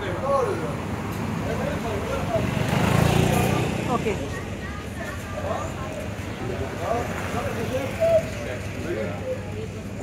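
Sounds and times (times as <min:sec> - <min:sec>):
people talking: 0:01.4 - 0:10.0.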